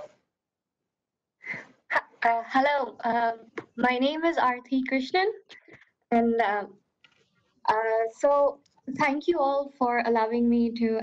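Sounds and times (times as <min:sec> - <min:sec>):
person speaking: 0:01.9 - 0:06.7, 0:07.7 - 0:11.0.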